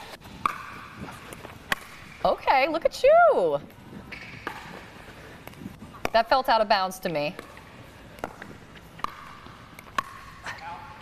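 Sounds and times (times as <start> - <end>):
paddle hitting pickleball: 0.4 - 2.3, 4.1 - 7.6, 8.2 - 10.5.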